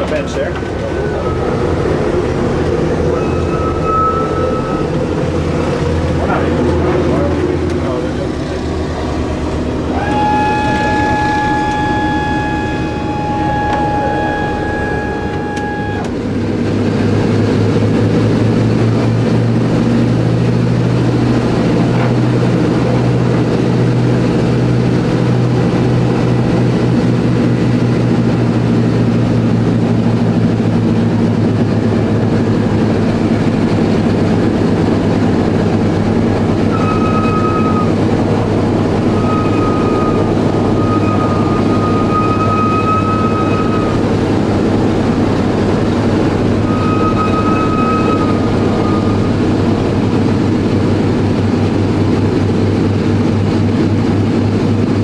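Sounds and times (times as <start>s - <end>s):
aircraft radial engines: 0.0s - 55.0s
steady high whine: 0.0s - 55.0s.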